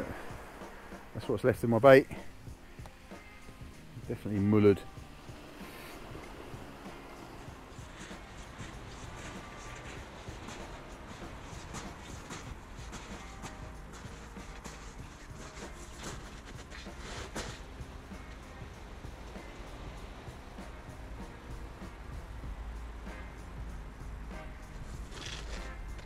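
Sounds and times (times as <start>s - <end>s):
faint background music: 0.0s - 26.0s.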